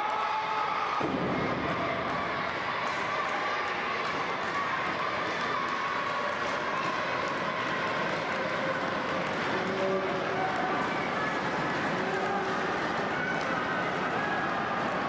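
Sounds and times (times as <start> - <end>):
crowd voices and shouts: 0.0 - 15.0.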